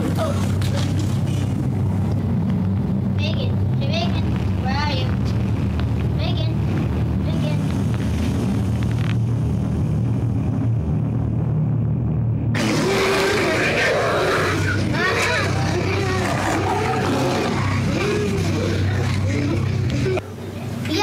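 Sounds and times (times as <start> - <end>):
steady low hum: 0.0 - 21.0.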